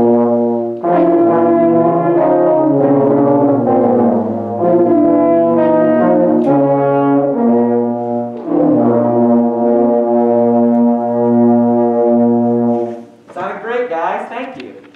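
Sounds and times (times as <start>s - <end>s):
brass ensemble playing: 0.0s - 13.3s.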